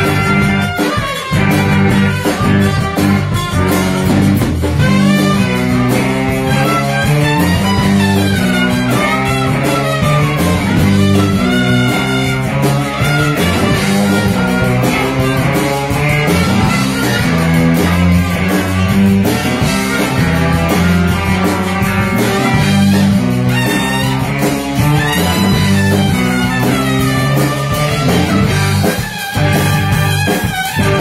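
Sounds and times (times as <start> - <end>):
drums and congas: 0.0 - 31.0
electric guitar: 0.0 - 31.0
keyboard: 0.0 - 31.0
live band playing loudly: 0.0 - 31.0.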